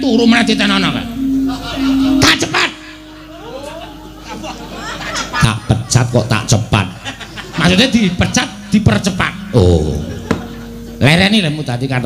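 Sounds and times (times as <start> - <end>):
voice holding long syllable: 0.0 - 4.2, 8.4 - 11.1.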